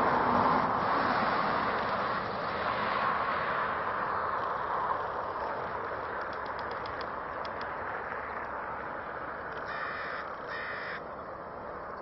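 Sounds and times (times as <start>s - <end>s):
bird calling: 9.6s - 11.1s.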